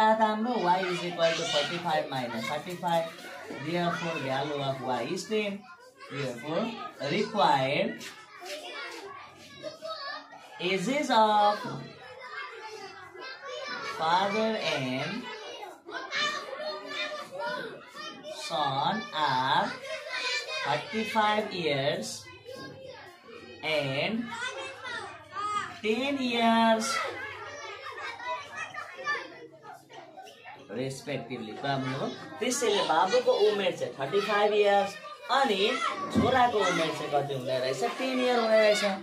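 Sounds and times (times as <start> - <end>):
children talking and playing: 0.0 - 39.0.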